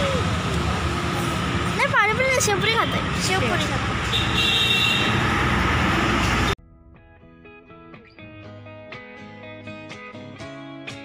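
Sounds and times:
traffic rumble: 0.0s - 6.6s.

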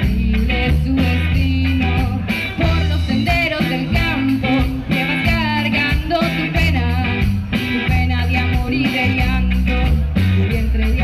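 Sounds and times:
band playing folk song: 0.0s - 11.0s.

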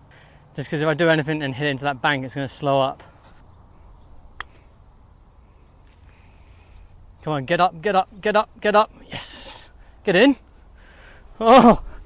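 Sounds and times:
faint high insect chirr: 0.0s - 12.0s.

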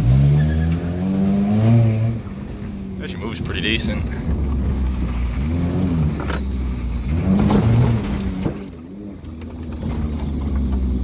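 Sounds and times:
car engine revving: 0.0s - 11.0s.

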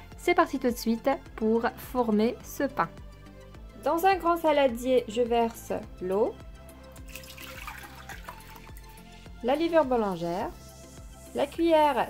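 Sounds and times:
water pouring into glass bowl: 6.9s - 9.1s.

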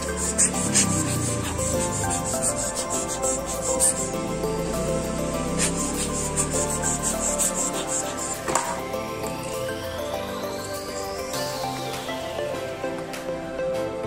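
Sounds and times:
background music with steady beat: 0.0s - 14.0s.

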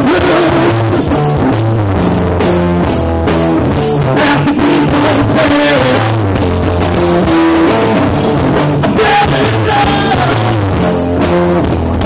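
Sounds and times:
drum kit: 0.0s - 12.0s
electric guitar: 0.0s - 12.0s
rock band playing live: 0.0s - 12.0s.

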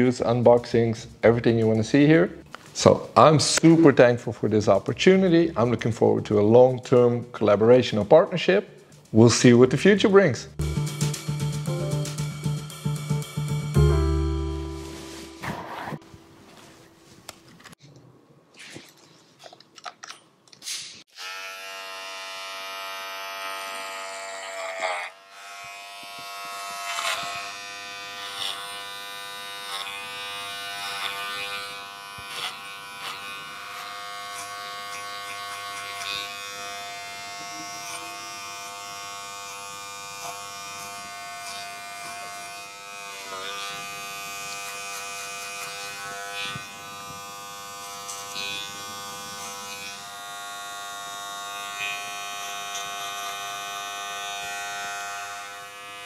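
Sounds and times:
hair clipper cutting hair: 10.6s - 13.8s, 21.1s - 56.0s.

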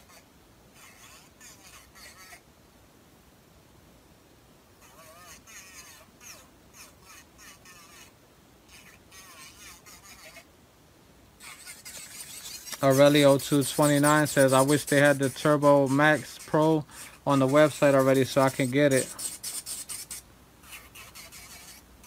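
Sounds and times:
low room noise: 0.0s - 22.0s.

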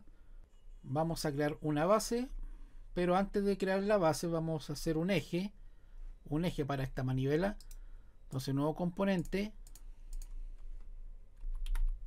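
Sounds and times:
computer keyboard typing: 9.2s - 10.4s, 11.4s - 12.0s.

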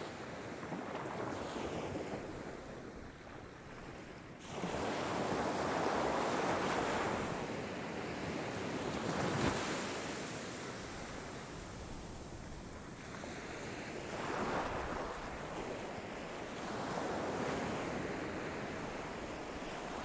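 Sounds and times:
waves washing on shore: 0.0s - 20.0s.

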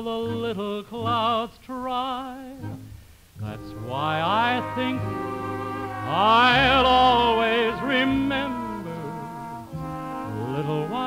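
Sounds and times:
slow orchestral ballad music: 2.6s - 11.0s.

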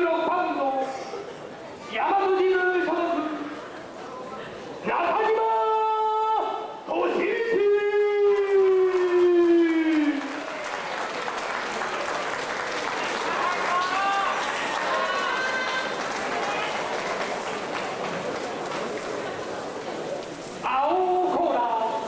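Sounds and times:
crowd applause: 8.3s - 20.3s
audience shouts: 13.1s - 16.9s.

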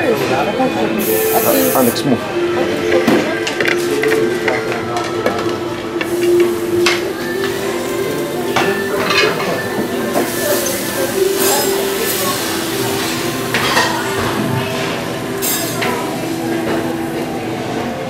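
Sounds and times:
dishes and utensils clinking: 2.9s - 16.9s.

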